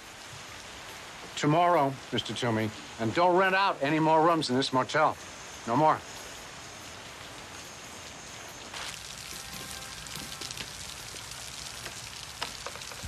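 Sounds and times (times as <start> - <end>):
steady rain falling: 0.0 - 13.0.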